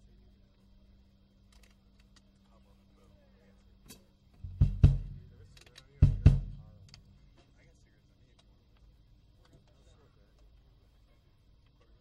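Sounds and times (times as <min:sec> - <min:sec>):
faint amplifier hum: 0:00.0 - 0:12.0
drum kit hits: 0:04.4 - 0:06.8.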